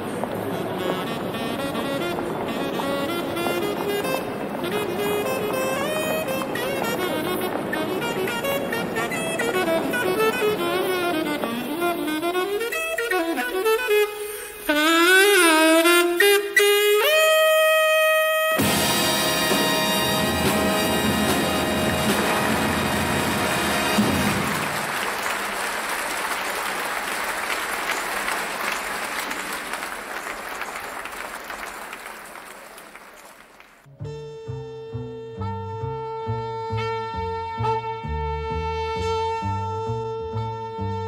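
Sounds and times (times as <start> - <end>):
saxophone line: 0.0 - 25.0, 33.9 - 41.0
jazz band chord and bass: 18.6 - 24.6, 33.9 - 41.0
repeating bass figure: 33.9 - 41.0.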